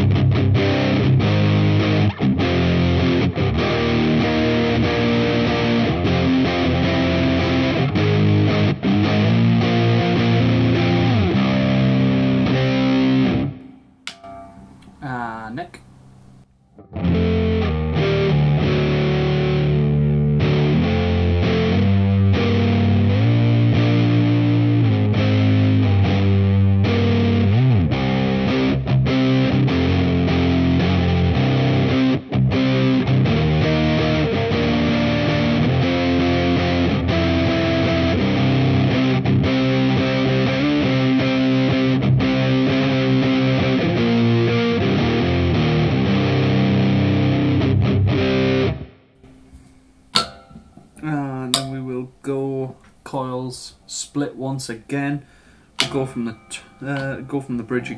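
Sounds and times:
distorted electric guitar riffing: 0.0 - 13.6, 17.0 - 52.2.

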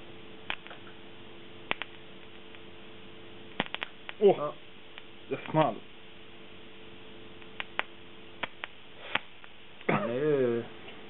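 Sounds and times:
sharp electrical snaps: 0.0 - 6.1, 7.2 - 9.9
steady electrical hum: 0.0 - 11.0.

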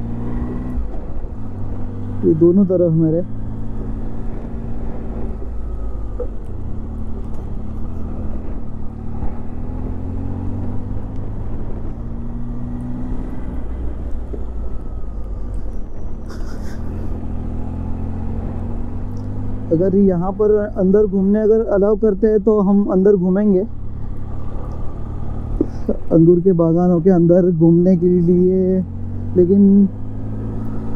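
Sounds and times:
road and wind noise: 0.0 - 30.9.

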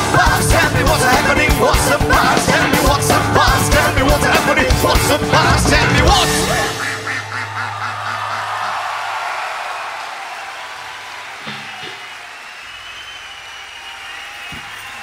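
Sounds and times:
crowd cheering and applauding: 0.0 - 15.0.

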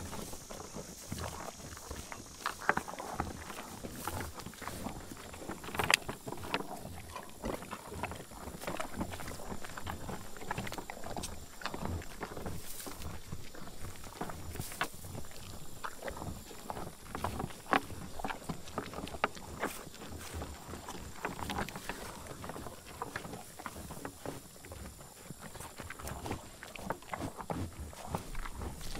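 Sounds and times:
bison chewing crunchy cubes: 0.0 - 28.9.

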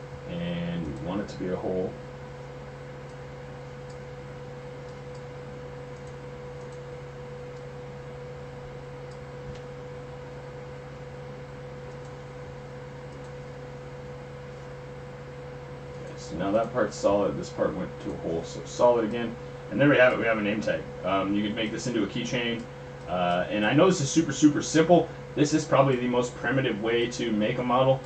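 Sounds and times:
constant tone: 0.0 - 28.0
low room hum: 0.0 - 28.0
computer mouse clicks: 3.8 - 4.1, 5.9 - 6.9, 9.0 - 9.7, 11.8 - 12.4, 13.1 - 13.4.

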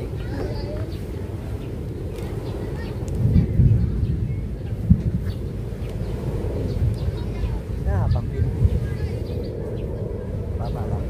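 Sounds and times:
faint voices: 0.0 - 11.0
wind buffeting microphone: 0.0 - 11.0.

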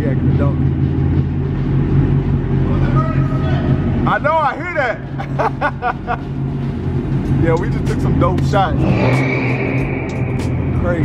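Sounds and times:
car engine idling: 0.0 - 11.0
man laughing: 5.0 - 6.4.

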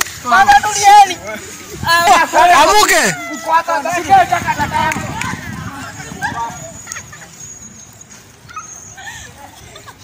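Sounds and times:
people shouting and crying out: 0.2 - 7.4.

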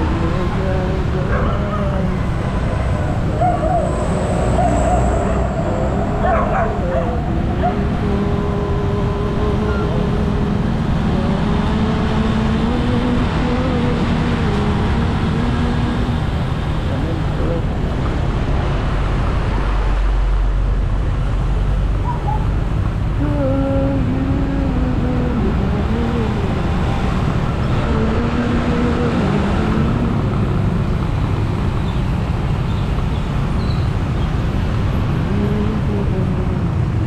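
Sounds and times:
road rumble: 0.0 - 37.0
dogs whining and yelping: 3.4 - 7.8, 22.0 - 22.5.

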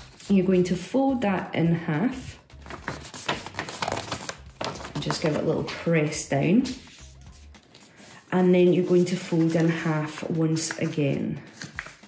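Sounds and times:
paper being folded: 0.0 - 0.5, 2.6 - 5.9, 6.7 - 12.0.

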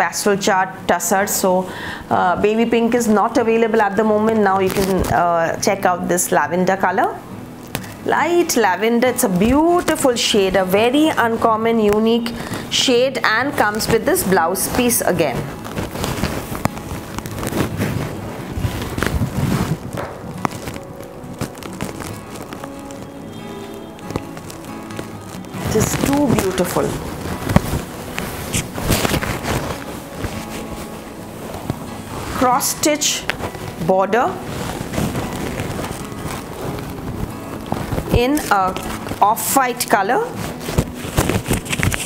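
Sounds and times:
soft background music: 0.0 - 42.0
silk fabric rustling: 2.6 - 5.9, 6.9 - 42.0.

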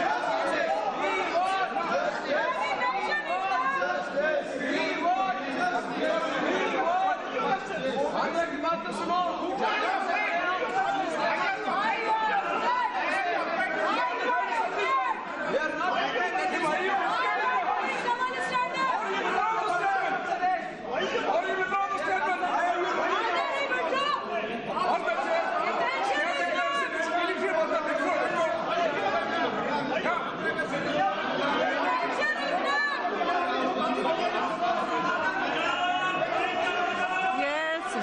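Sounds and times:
crowd talking and shouting: 0.0 - 38.0.

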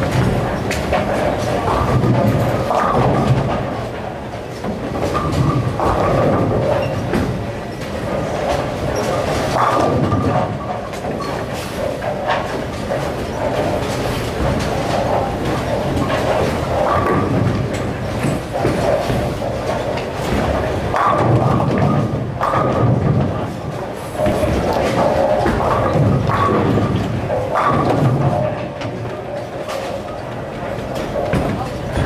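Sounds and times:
bowling balls rolling: 0.0 - 32.0
bowling pins clattering: 0.0 - 32.0.

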